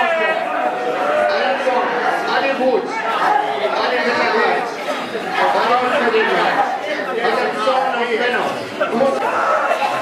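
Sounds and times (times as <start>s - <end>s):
people praying aloud: 0.0s - 10.0s.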